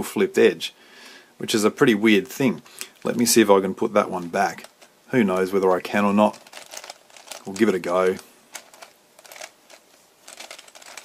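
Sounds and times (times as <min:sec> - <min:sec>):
puzzle cube clicking and rattling: 0:06.2 - 0:11.0.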